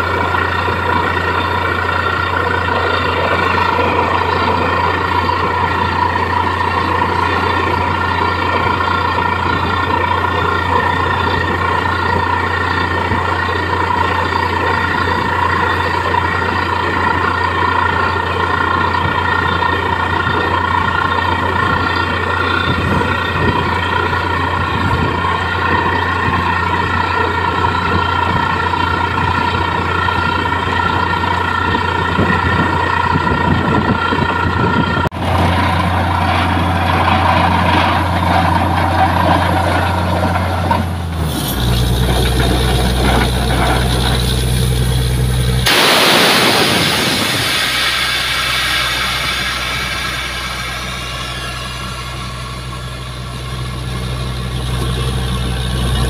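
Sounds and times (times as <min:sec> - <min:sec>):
drilling rig engine drone: 0:00.0 - 0:56.0
rushing noise: 0:43.2 - 0:54.7
air compressor high tones: 0:45.6 - 0:56.0.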